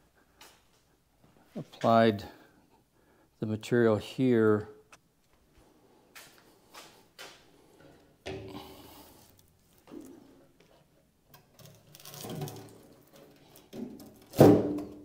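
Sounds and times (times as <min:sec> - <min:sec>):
knocks and rustles of handling: 0:05.2 - 0:15.0.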